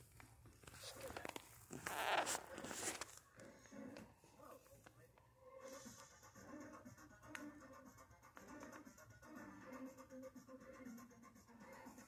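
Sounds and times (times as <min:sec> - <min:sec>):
sped-up cartoon soundtrack from tv: 0:02.5 - 0:12.0.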